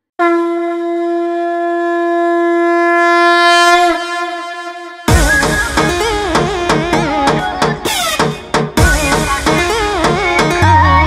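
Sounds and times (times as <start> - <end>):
conch shell blown: 0.1 - 6.6.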